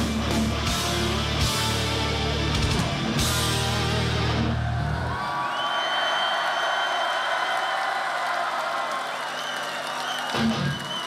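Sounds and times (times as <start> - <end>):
crowd cheering: 0.1 - 11.0.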